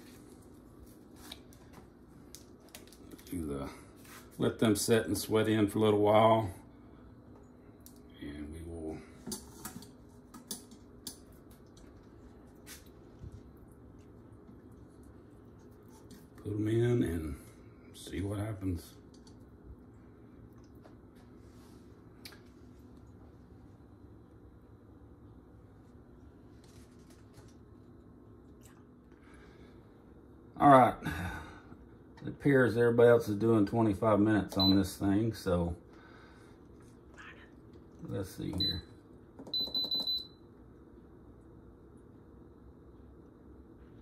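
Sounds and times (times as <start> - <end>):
low room hum: 0.0 - 44.0.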